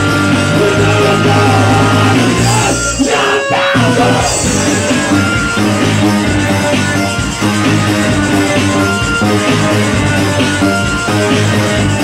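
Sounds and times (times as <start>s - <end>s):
live punk rock band: 0.0s - 12.0s.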